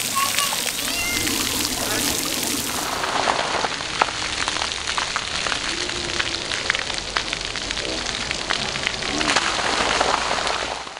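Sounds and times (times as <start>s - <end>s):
water dripping and splashing: 0.0s - 10.9s
water pouring: 0.0s - 10.9s.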